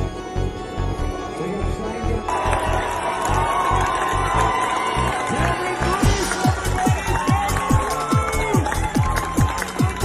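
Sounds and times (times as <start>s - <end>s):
euro dance track: 3.7s - 10.0s.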